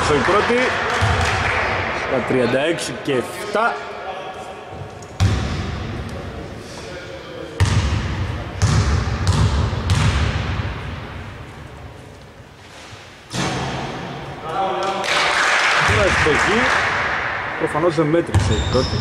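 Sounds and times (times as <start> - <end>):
basketball bouncing in echoing hall: 0.0 - 2.0, 5.1 - 6.4, 7.6 - 12.0, 13.3 - 19.0.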